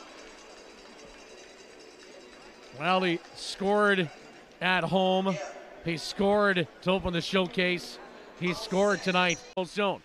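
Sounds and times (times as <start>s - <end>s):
faint arena background noise: 0.0s - 10.0s.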